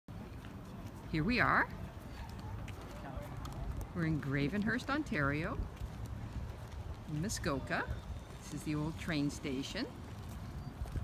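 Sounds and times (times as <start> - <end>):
footsteps on brick paving: 0.1 - 11.0.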